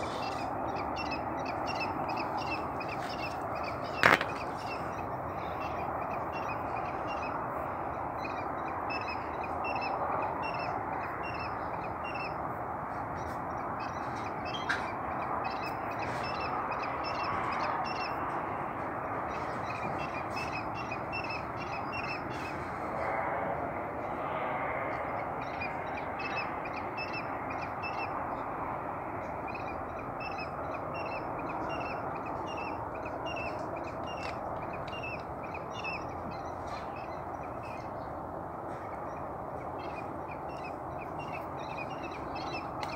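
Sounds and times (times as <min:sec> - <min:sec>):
bird chirping: 0:00.0 - 0:12.4, 0:19.3 - 0:22.6, 0:25.4 - 0:28.5, 0:29.4 - 0:42.9
rushing background noise: 0:00.0 - 0:42.9.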